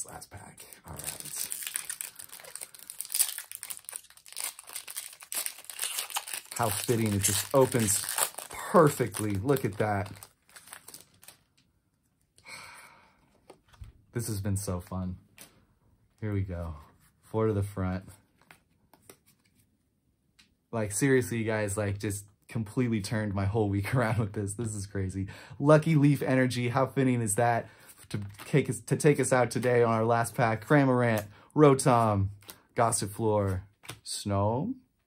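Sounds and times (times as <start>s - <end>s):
trading cards clicking and rustling: 0.8s - 11.4s
foil wrapper crinkling: 0.8s - 11.6s.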